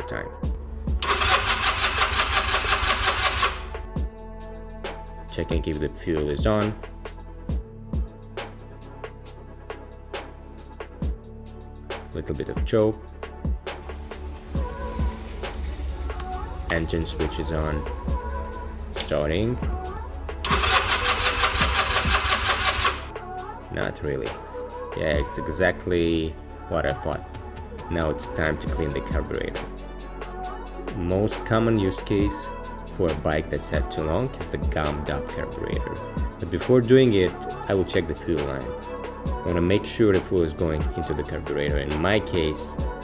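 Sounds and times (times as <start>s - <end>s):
electric starter cranking engine: 1.0s - 3.8s, 20.4s - 23.1s.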